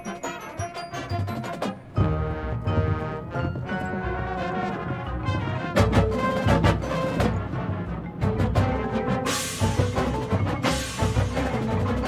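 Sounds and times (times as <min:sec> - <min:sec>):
brass playing held chords: 0:00.0 - 0:12.0
marching percussion: 0:00.0 - 0:12.0
loud percussion accents: 0:03.6 - 0:12.0.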